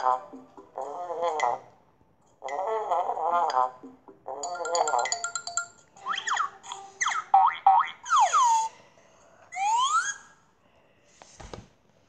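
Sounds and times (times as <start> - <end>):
slide whistle glides: 9.5 - 10.3.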